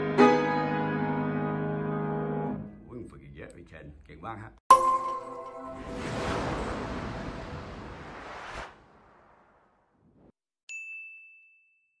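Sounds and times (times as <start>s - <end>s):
bright bell-like chime: 4.7s - 6.0s, 10.7s - 12.0s
swish: 5.8s - 10.3s.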